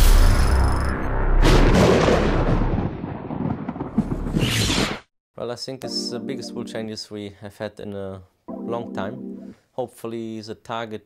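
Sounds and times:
short sharp hit: 0.0s - 2.5s
deep rumbling boom: 0.0s - 4.4s.

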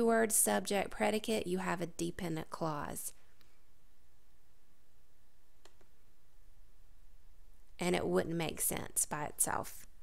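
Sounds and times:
faint room hum: 0.0s - 10.0s
computer mouse clicking: 5.6s - 5.9s.

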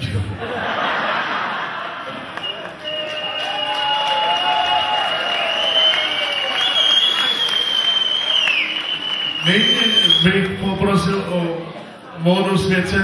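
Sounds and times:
crowd clapping and cheering: 2.0s - 11.3s
high-pitched whistle-like tone: 4.8s - 10.3s.

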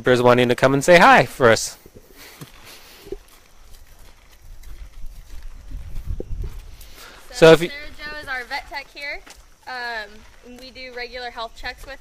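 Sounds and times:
hooves thumping on ground: 0.4s - 12.0s.

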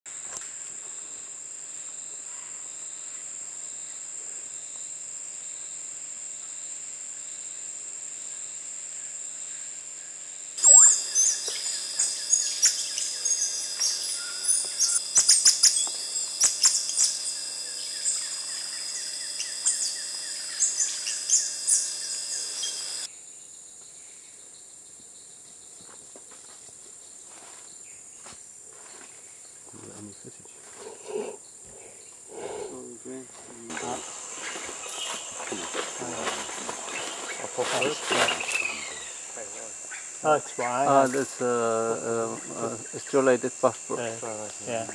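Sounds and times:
insect drone: 0.1s - 44.9s
sharp high insect chirps: 0.1s - 44.9s.

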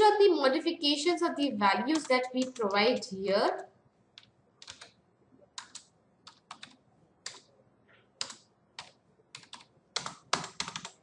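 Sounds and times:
keyboard keys clicking: 1.9s - 2.9s, 4.2s - 5.0s, 5.6s - 7.5s, 8.2s - 11.0s.

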